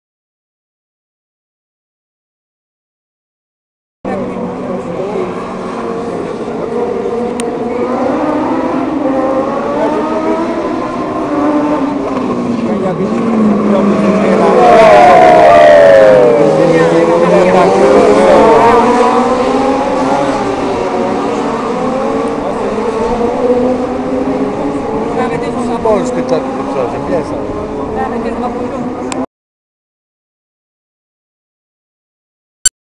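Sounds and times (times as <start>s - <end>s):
motorcycle engines revving: 4.1s - 29.3s.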